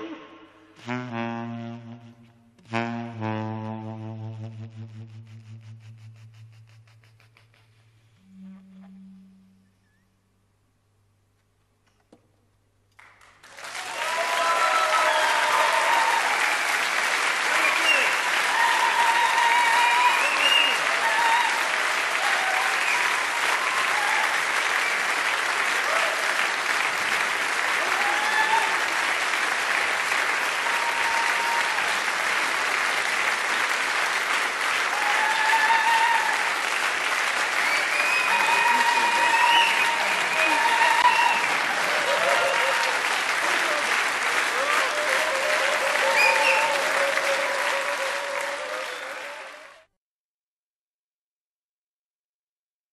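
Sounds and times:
audience applauding: 12.9s - 49.9s
voices calling out and cheering: 37.6s - 49.7s.

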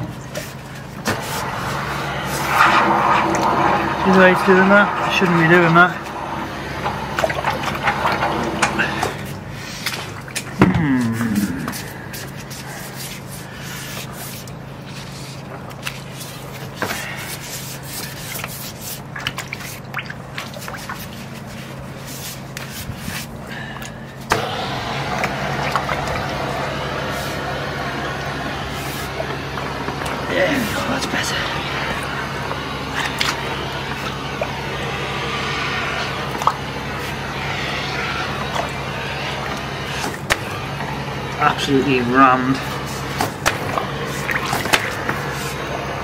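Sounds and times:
jetting machine humming: 0.0s - 19.2s, 20.2s - 46.0s.

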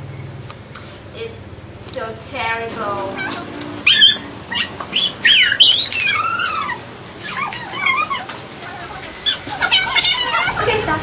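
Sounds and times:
girls squealing and laughing: 8.9s - 11.0s.

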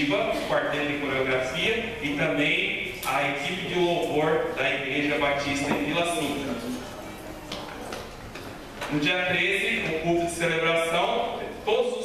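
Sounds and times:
man speaking into a microphone: 0.0s - 6.8s, 8.9s - 12.0s
low steady background noise: 0.0s - 12.0s.

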